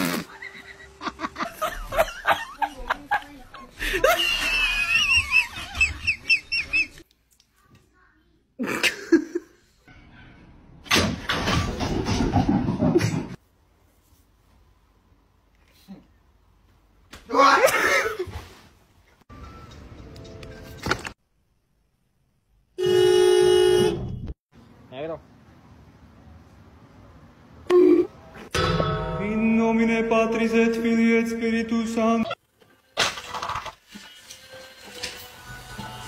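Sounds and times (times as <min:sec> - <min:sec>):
car horn blast: 0:22.8 - 0:24.3.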